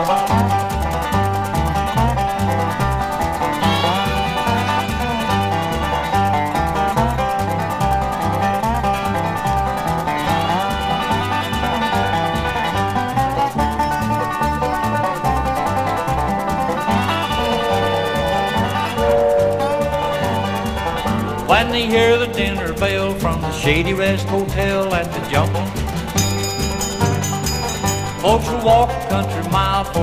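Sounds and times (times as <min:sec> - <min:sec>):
banjo and guitar bluegrass: 0:00.0 - 0:30.0
bouncing bass line: 0:00.0 - 0:30.0.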